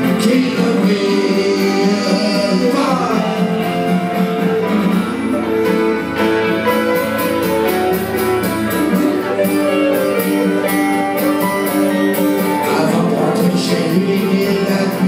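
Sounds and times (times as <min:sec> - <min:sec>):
acoustic guitars strumming: 0:00.0 - 0:15.0
electric guitar: 0:00.0 - 0:15.0.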